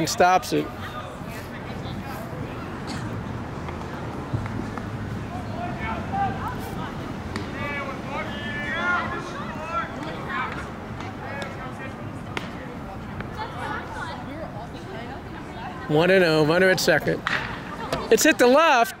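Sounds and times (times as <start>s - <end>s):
outdoor background noise: 0.0s - 19.0s
people talking and calling out: 0.0s - 19.0s.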